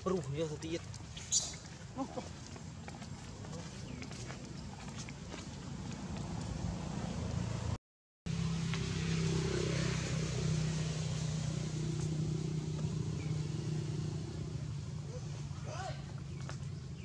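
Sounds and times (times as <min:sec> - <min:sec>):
engine humming: 0:00.0 - 0:17.0.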